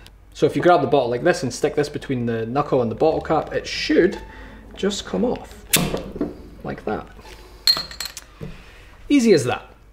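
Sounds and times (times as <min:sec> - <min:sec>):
bottle cap clinking on wood: 0:07.7 - 0:08.3.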